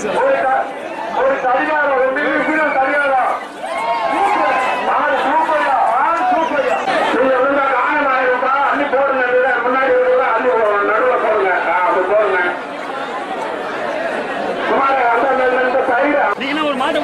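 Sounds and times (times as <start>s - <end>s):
man announcing over loudspeaker: 0.0s - 12.7s, 14.6s - 17.0s
crowd chatter: 0.0s - 17.0s.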